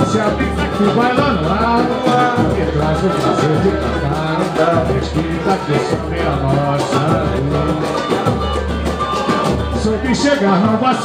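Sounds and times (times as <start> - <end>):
man singing into microphone: 0.0 - 8.5, 9.8 - 11.0
samba band playing: 0.0 - 11.0.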